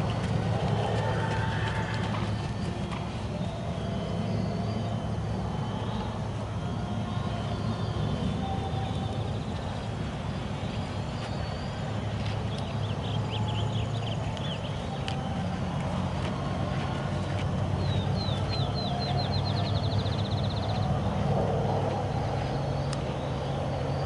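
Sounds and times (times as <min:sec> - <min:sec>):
engine humming: 0:00.0 - 0:24.0
small birds chirping: 0:00.4 - 0:15.8, 0:17.2 - 0:21.1.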